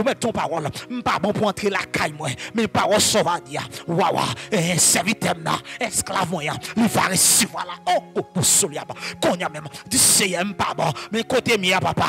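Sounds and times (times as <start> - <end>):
man praying into a microphone: 0.0 - 12.0.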